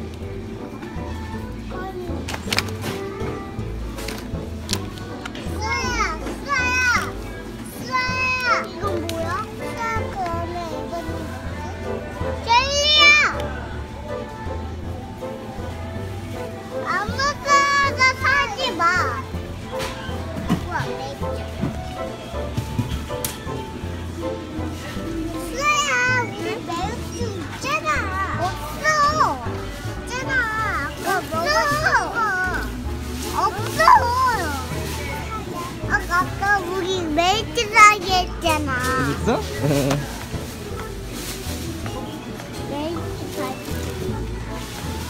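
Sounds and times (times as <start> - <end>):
background music: 0.0 - 45.0
young children chattering: 0.0 - 45.0.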